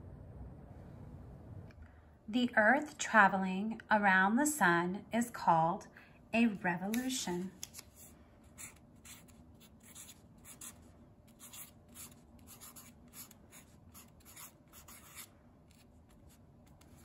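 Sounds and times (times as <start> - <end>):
marker writing on paper: 7.7 - 17.0.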